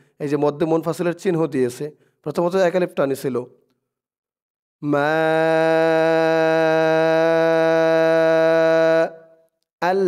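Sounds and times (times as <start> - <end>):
man reciting a long vowel: 4.8 - 10.0.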